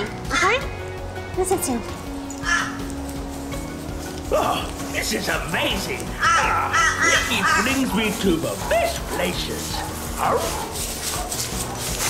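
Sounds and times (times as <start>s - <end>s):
dog yipping: 2.4s - 2.9s, 6.2s - 12.0s.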